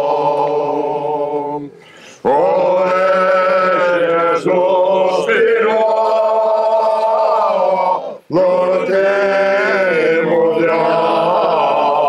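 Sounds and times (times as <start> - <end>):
men singing a cappella chant: 0.0 - 12.0
singer breathing: 1.7 - 2.3.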